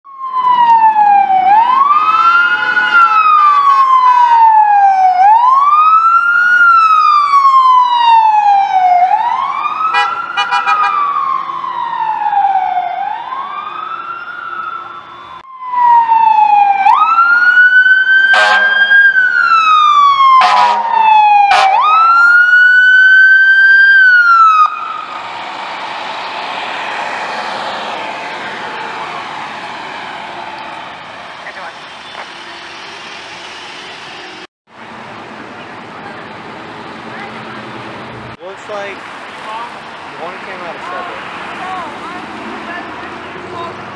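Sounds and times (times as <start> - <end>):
electronic wail sirens: 0.1 - 33.5
road and engine noise: 0.1 - 43.9
short loud horn blasts: 18.4 - 18.8.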